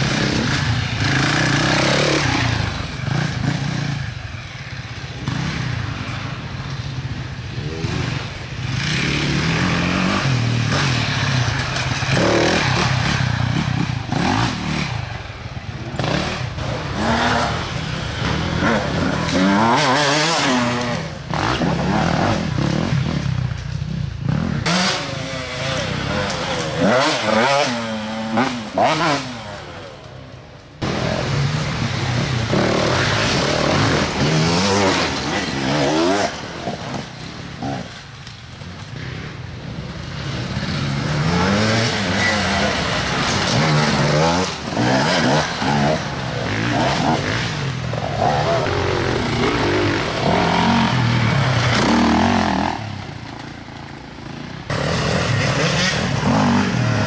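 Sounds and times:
dirt bike engine revving: 0:00.0 - 0:23.3, 0:24.2 - 0:29.8, 0:30.8 - 0:37.9, 0:38.9 - 0:57.0.

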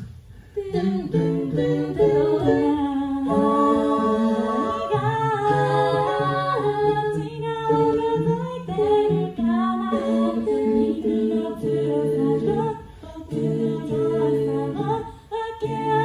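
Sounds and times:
a cappella group singing: 0:00.0 - 0:16.0.

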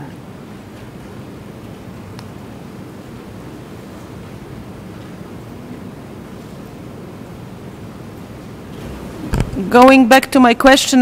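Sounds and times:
room noise hiss and hum: 0:00.0 - 0:11.0.

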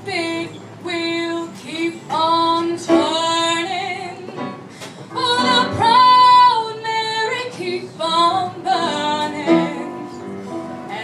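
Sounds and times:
woman singing long held notes: 0:00.0 - 0:10.2.

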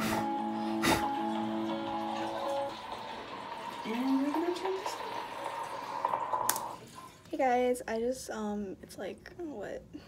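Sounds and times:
water running and dripping: 0:01.0 - 0:07.3.

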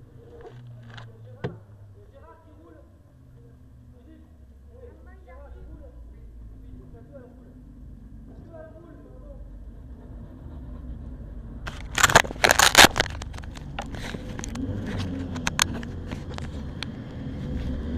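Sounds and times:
low steady rumble: 0:00.0 - 0:17.9
knocks and rustling at microphone: 0:09.9 - 0:17.9.

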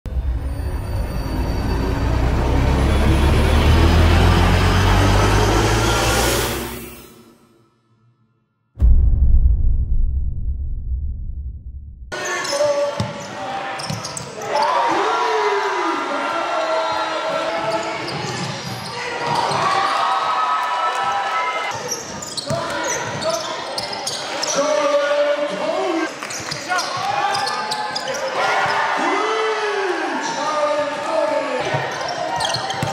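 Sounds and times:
deep rumble: 0:00.1 - 0:07.0, 0:08.8 - 0:12.1.

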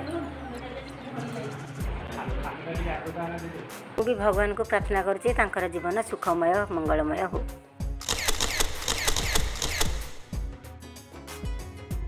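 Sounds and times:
camera shutter clicking rapidly: 0:08.0 - 0:10.4.

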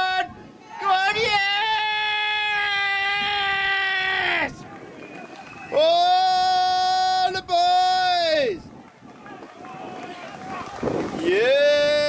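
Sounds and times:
man shouting and cheering: 0:00.0 - 0:04.7, 0:05.7 - 0:08.6, 0:09.6 - 0:12.0.

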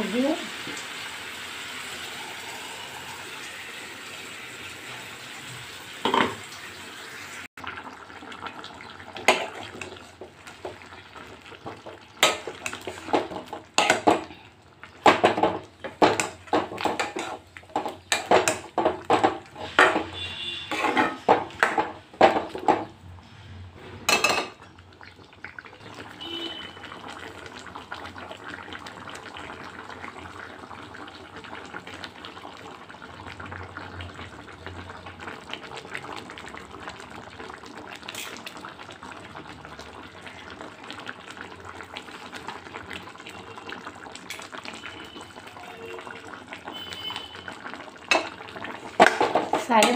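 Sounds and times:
metal ladle scraping a wok: 0:16.8 - 0:17.4, 0:19.5 - 0:21.4.

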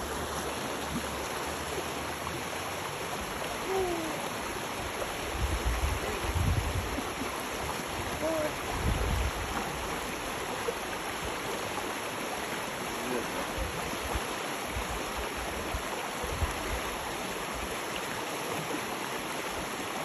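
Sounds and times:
creek water rushing: 0:00.0 - 0:20.0.

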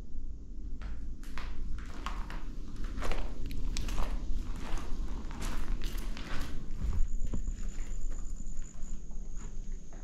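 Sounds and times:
footsteps crunching over rubble: 0:00.8 - 0:10.0.

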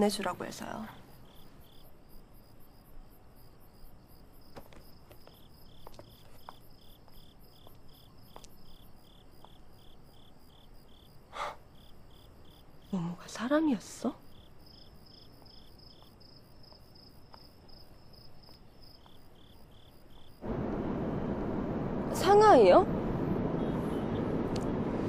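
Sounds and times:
crickets chirping: 0:00.0 - 0:25.0.

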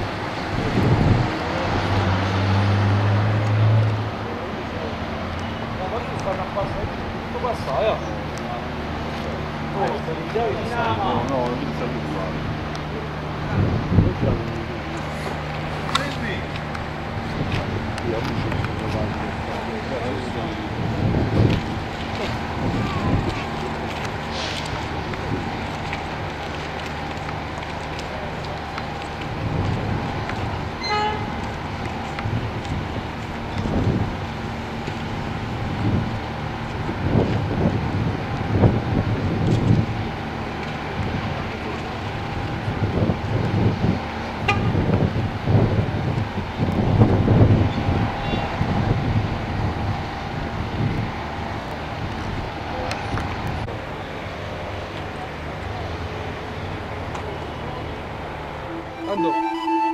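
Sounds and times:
low wind rumbling: 0:20.6 - 0:27.6
continuous alarm tone: 0:58.7 - 0:59.9.

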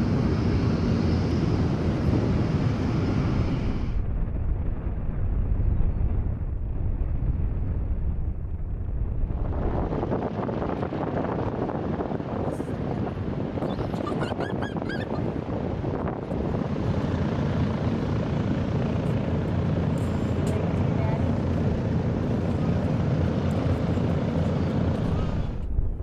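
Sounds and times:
deep drone of propeller engines: 0:00.0 - 0:26.0.

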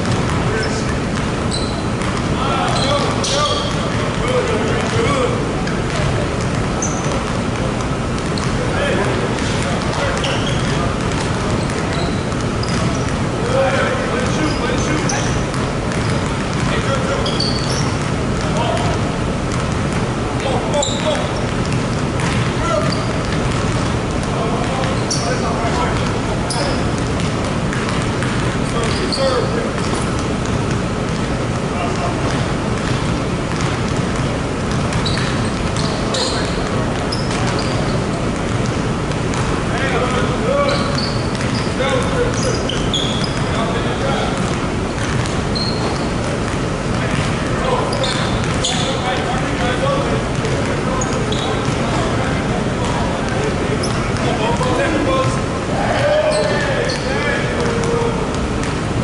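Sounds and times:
basketballs bouncing on hardwood floor: 0:00.0 - 0:59.0
short high squeaks: 0:01.5 - 0:02.0, 0:17.2 - 0:18.0, 0:35.0 - 0:38.2, 0:40.6 - 0:43.5, 0:45.5 - 0:46.2, 0:47.9 - 0:49.0.

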